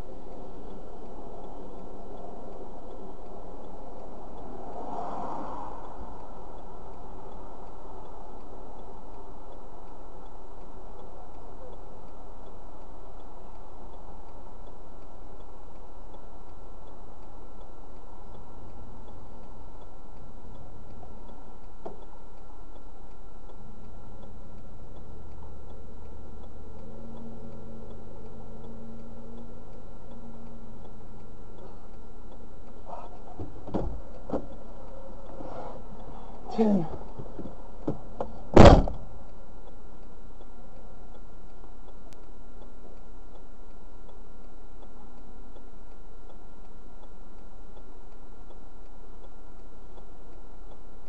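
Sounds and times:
deeper engine drone: 0.0 - 49.2
hazard light flasher ticking: 0.0 - 51.0.

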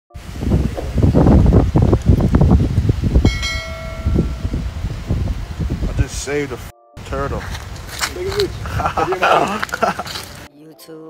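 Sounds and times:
wind buffeting microphone: 0.1 - 10.5
handling rumble: 7.0 - 10.5.

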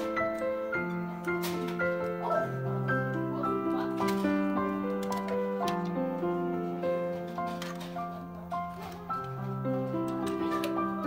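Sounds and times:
music of held overlapping notes: 0.0 - 11.0.

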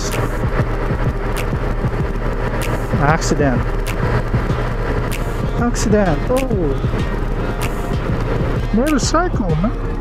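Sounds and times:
motorcycle engine cruising: 0.0 - 10.0
wind and road noise: 0.0 - 10.0.

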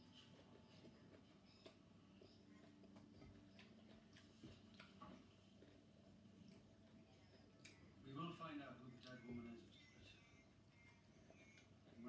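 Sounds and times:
chewing: 0.0 - 12.0
faint low hum: 0.0 - 12.0.

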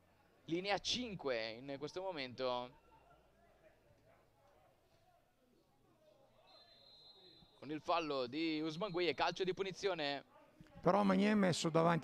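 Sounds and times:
faint distant voices: 0.0 - 11.0
referee's whistle blast: 6.4 - 7.8.

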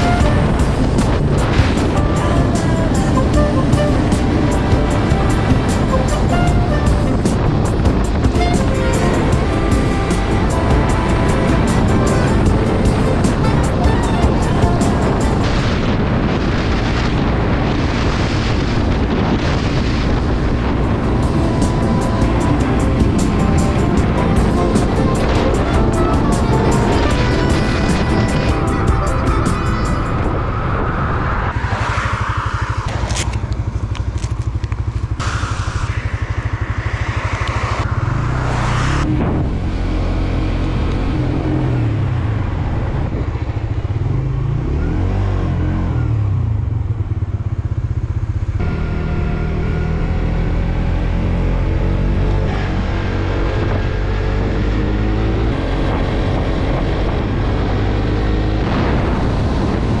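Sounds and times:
motorcycle engine running: 0.0 - 30.3, 32.9 - 38.2, 39.4 - 60.0
tyres on wet road: 0.0 - 60.0
wind noise: 0.0 - 60.0.

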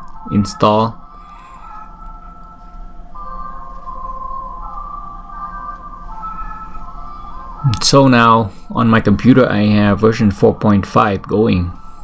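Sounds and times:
held electronic tones: 0.0 - 10.5
steady low hum: 0.0 - 12.0.

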